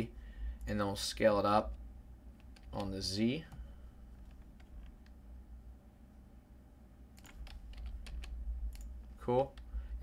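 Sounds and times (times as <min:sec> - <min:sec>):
low steady hum: 0:00.0 - 0:10.0
computer keyboard keystrokes: 0:02.4 - 0:03.0, 0:07.2 - 0:09.7.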